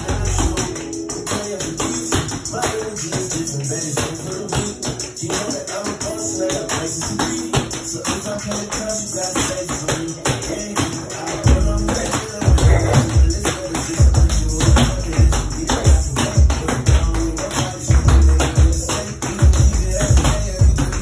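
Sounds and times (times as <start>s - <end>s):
hip-hop track: 0.0s - 21.0s
tap shoes on hardwood floor: 0.0s - 21.0s.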